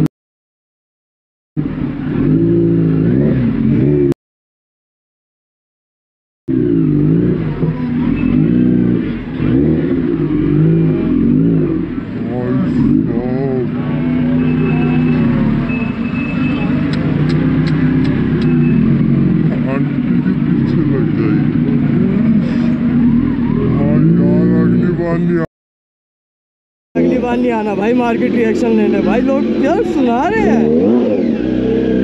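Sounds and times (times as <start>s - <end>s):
motorcycle engine revving: 1.6s - 4.2s, 6.5s - 25.5s, 27.0s - 32.0s
crowd voices: 7.1s - 25.5s, 27.0s - 32.0s.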